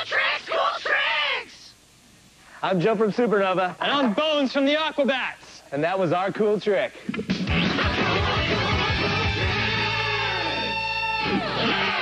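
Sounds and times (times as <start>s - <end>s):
electric guitars bending a chord: 7.5s - 12.0s.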